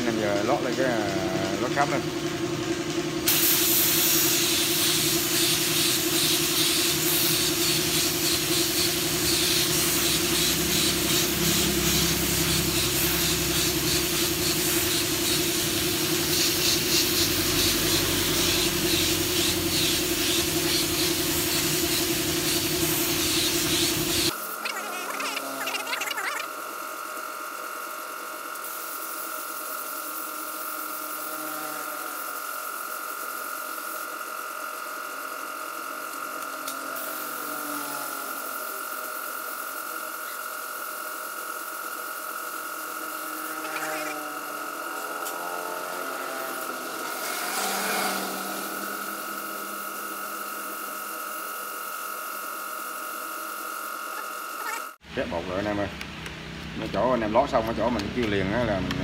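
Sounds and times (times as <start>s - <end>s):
spray gun hissing: 3.3s - 24.6s, 28.6s - 31.5s, 36.8s - 53.9s.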